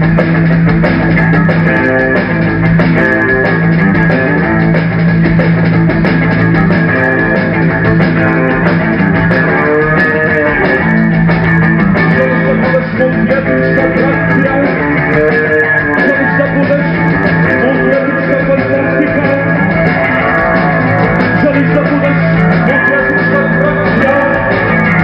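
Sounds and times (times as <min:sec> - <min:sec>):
drum kit: 0:00.0 - 0:25.0
electric bass: 0:00.0 - 0:25.0.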